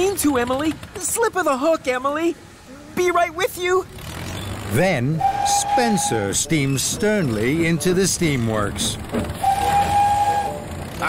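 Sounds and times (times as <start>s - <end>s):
steam engine whistle: 5.2s - 6.4s, 9.4s - 10.8s.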